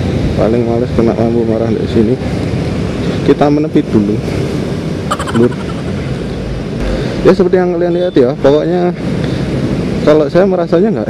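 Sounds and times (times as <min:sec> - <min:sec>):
traffic passing: 0:04.2 - 0:07.5.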